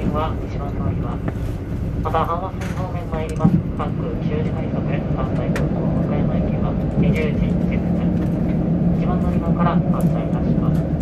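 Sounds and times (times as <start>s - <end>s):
diesel railcar rumble: 0.0s - 11.0s.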